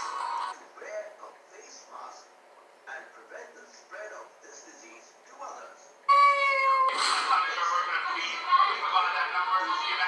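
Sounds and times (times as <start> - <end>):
meow-like call: 6.1 - 7.0.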